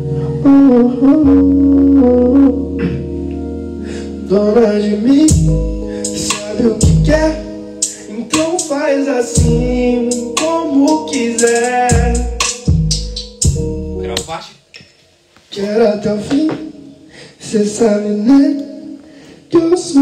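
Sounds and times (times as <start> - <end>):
man singing into microphone: 0.2 - 3.0, 4.2 - 12.6, 15.5 - 20.0
hip-hop beat: 4.2 - 14.4
deep bass hits: 5.3 - 7.5, 9.4 - 14.3.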